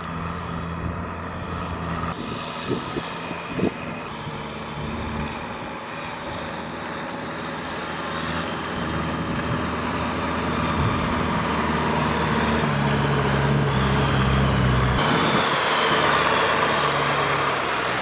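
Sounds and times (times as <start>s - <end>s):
tractor diesel engine under load: 0.0s - 18.0s.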